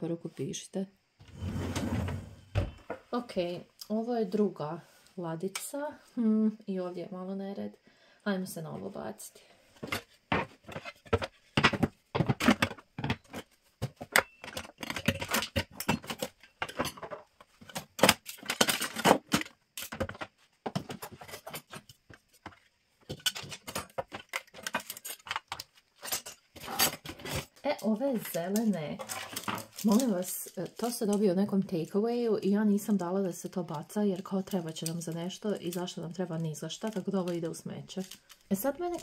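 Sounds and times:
kitchen utensils clattering: 14.0 - 20.1.

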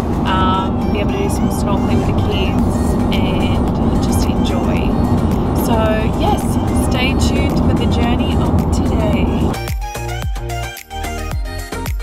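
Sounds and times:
car cabin road and engine noise: 0.0 - 10.2.

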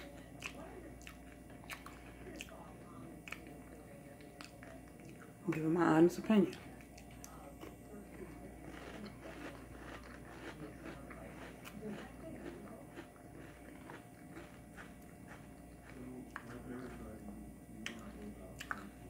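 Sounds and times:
person chewing crunchy cereal: 0.0 - 5.3, 6.8 - 17.2.

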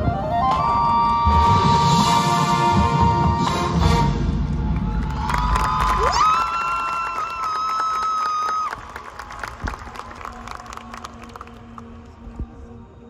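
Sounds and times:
stadium crowd cheering: 4.5 - 12.2
long high whoop: 4.8 - 8.8.

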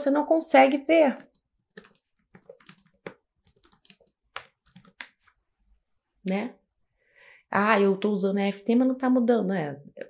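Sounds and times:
faint keyboard typing: 1.1 - 5.4.

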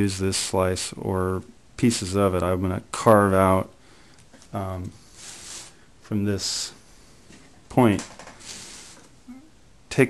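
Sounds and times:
hand brushing and rustling paper: 5.0 - 5.8, 8.4 - 9.2.

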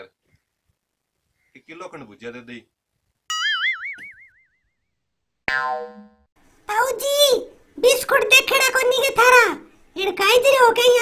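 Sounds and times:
wobbling boing: 3.3 - 4.8, 5.5 - 6.3.

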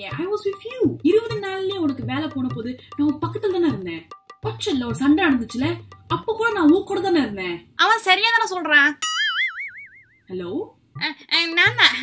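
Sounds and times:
woman talking: 0.0 - 9.0, 10.3 - 12.0
cartoon boing sound effect: 9.0 - 10.3.

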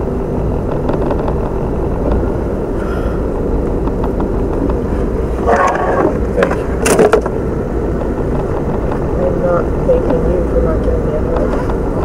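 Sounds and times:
car cabin engine rumble: 0.0 - 12.0.

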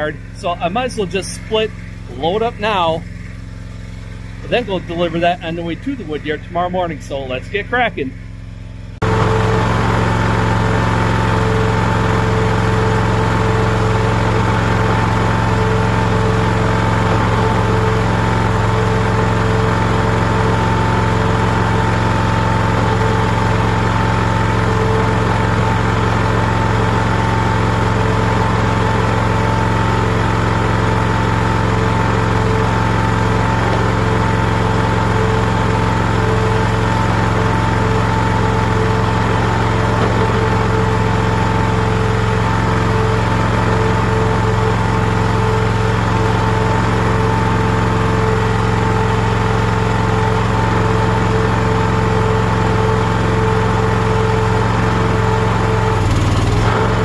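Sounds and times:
log splitter engine running: 0.0 - 57.0.

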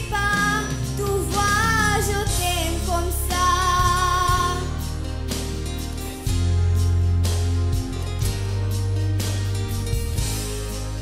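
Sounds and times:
girl singing into microphone: 0.0 - 4.8
backing music: 0.0 - 11.0.

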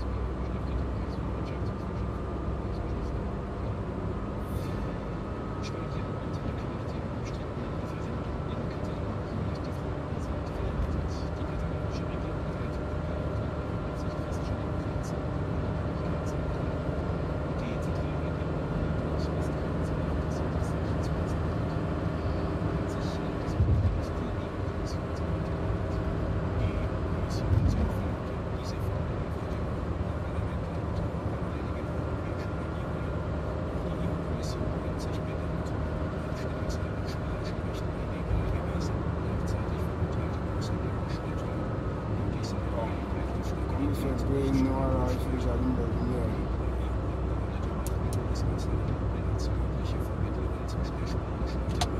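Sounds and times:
car engine and tyre rumble: 0.0 - 51.9.

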